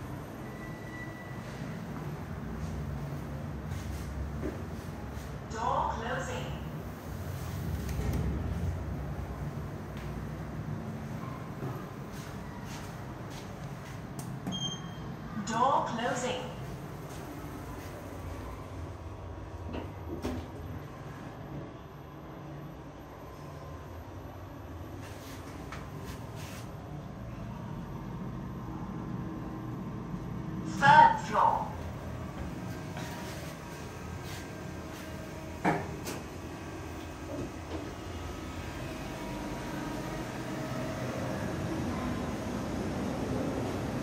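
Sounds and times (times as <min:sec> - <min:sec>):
elevator ride hum: 0:00.0 - 0:44.0.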